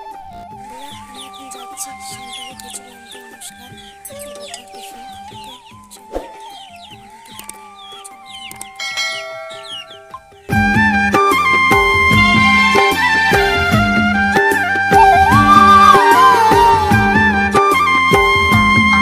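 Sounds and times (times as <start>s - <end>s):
background music: 0.0s - 19.0s
chickens clucking: 0.6s - 10.8s
high chirping calls: 0.6s - 10.8s, 15.0s - 17.0s.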